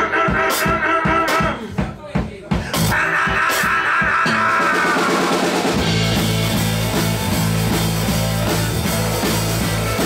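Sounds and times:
blues rock band playing live: 0.0s - 1.8s, 2.6s - 10.0s
drum hits: 0.0s - 10.0s
bass guitar: 2.6s - 10.0s.

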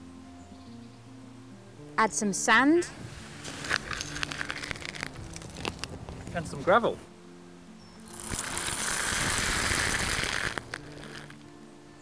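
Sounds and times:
sand pouring into plastic bucket: 3.2s - 5.7s, 8.0s - 11.4s.

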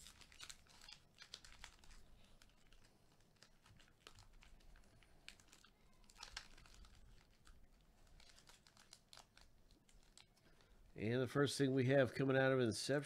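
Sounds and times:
foil wrapper crinkling: 0.0s - 10.8s.

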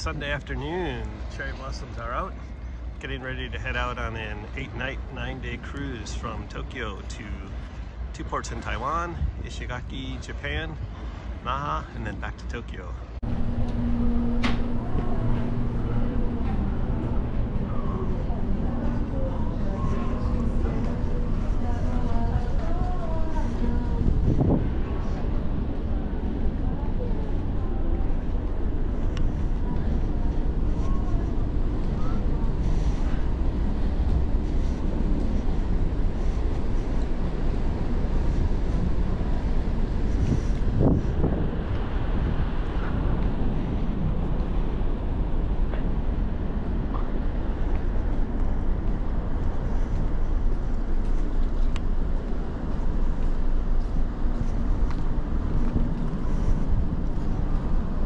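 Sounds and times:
wind buffeting microphone: 13.0s - 58.0s.

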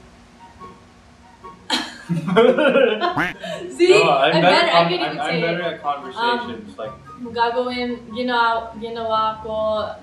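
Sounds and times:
person laughing: 1.7s - 3.7s
soft voice: 3.1s - 3.4s.

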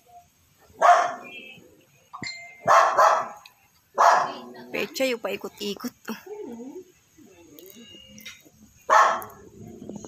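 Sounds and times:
dog barking: 0.7s - 1.4s, 2.6s - 3.4s, 4.0s - 4.5s, 8.9s - 9.4s.

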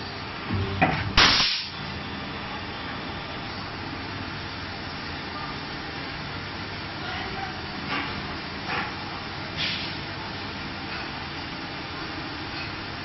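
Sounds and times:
sharp loud burst: 1.2s - 1.8s.

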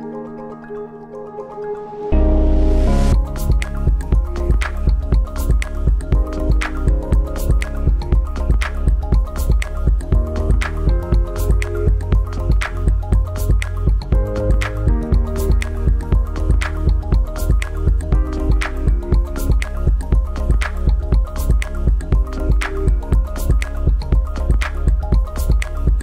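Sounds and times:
music with steady beat and bass: 2.2s - 26.0s.

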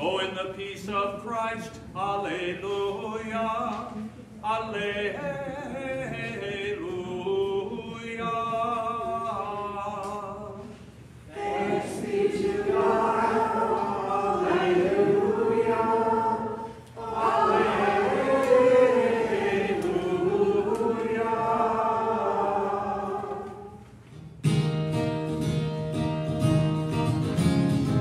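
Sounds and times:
voices singing unaccompanied: 2.2s - 23.8s.

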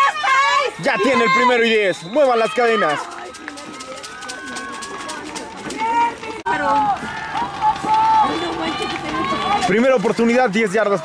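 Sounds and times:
distant voices shouting: 0.0s - 11.0s.

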